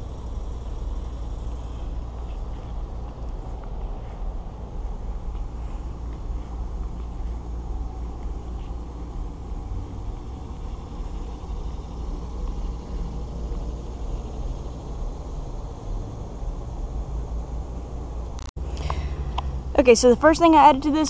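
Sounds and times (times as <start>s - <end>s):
low outdoor rumble: 0.0s - 21.0s.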